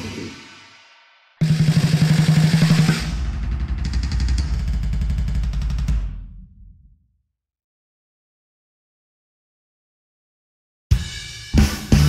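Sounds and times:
fast drum roll: 1.4s - 6.3s.

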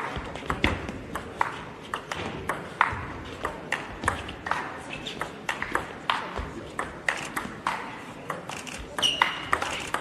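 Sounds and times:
table tennis ball clicking: 6.8s - 10.0s.

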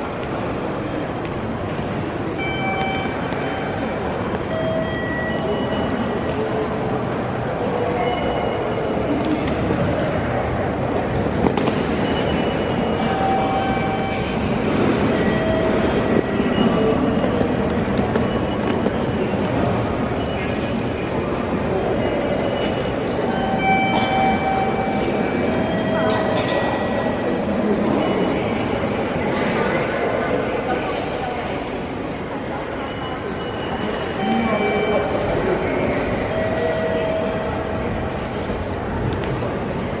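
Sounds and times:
echoing crowd noise: 0.0s - 40.0s.

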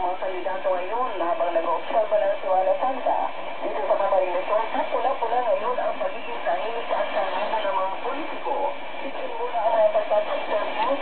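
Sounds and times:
atmospheric radio hiss: 0.0s - 11.0s.

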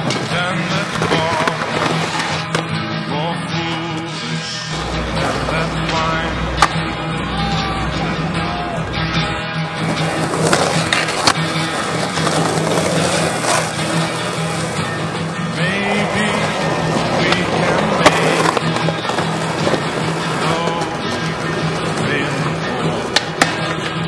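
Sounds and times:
skateboard wheels rolling on concrete: 0.0s - 24.0s
song playing: 0.0s - 24.0s
skateboard pops and landings: 23.1s - 24.0s.

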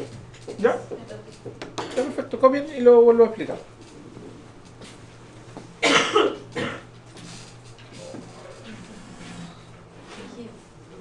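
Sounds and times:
person coughing: 5.8s - 6.9s.

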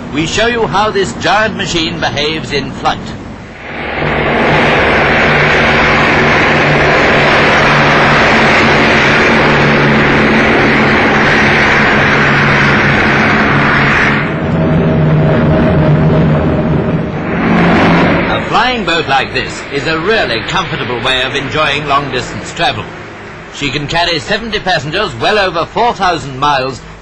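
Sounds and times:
aircraft engines droning: 0.0s - 27.0s.

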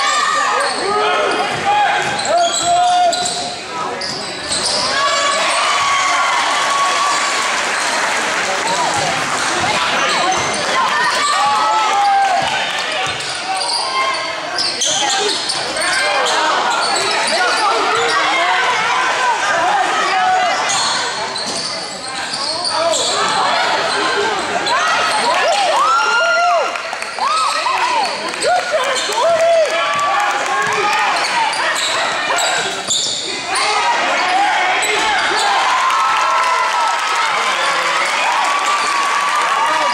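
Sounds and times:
spectators' voices and shouts: 0.0s - 39.9s
sneakers squeaking: 0.4s - 6.1s, 8.9s - 11.4s, 12.0s - 18.4s, 20.5s - 25.3s, 30.6s - 35.7s.

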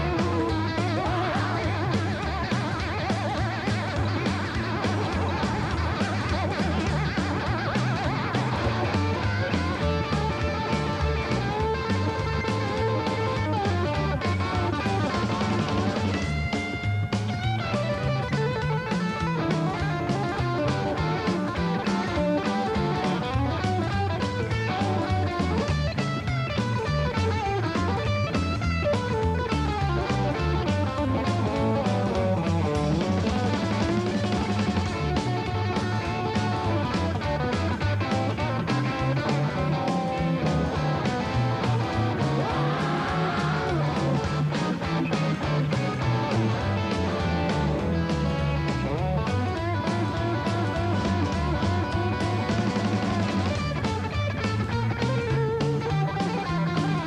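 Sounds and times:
drums: 0.0s - 57.0s
electric guitar lead line: 0.0s - 57.0s
upright bass: 0.0s - 57.0s.

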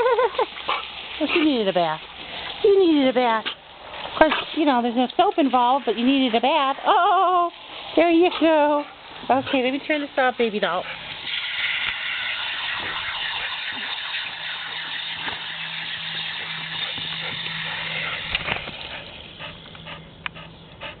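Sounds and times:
water running through hose: 0.0s - 19.9s
low hum: 11.9s - 21.0s.

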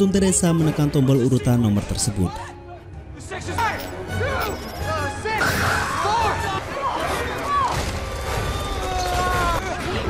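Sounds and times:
background music: 0.0s - 10.0s
young men shouting and crying out: 2.3s - 10.0s.

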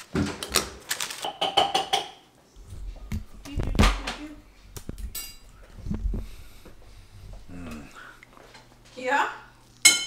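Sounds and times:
paper bag rustling: 0.0s - 1.3s.

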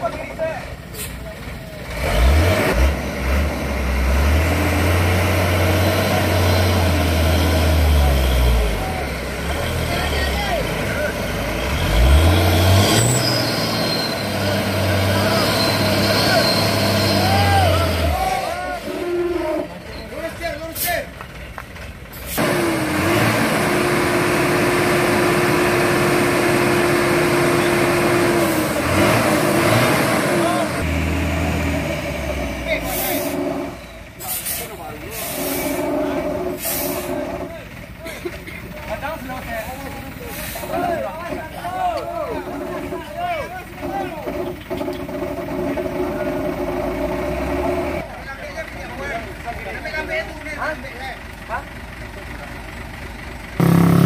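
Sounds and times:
diesel truck engine revving: 0.8s - 38.0s, 42.4s - 48.2s, 50.6s - 54.0s
people shouting: 17.2s - 19.4s.

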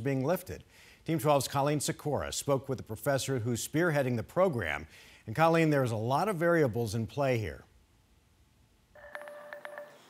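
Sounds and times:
faint electronic tone: 9.0s - 10.0s.

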